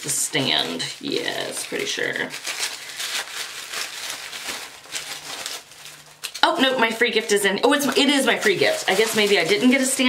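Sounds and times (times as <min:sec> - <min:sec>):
packaging crinkling: 0:00.0 - 0:10.0.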